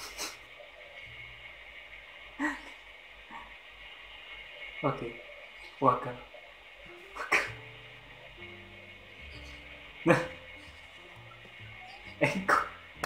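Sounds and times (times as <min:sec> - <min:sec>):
soft background music: 0:05.8 - 0:13.0.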